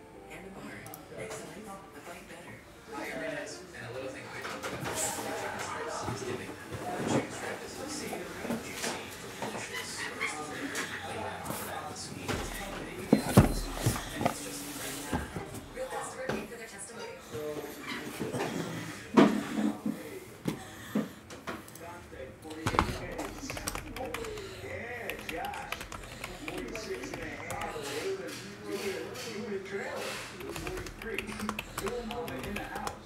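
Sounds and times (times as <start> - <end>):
background speech: 0.0 - 33.0.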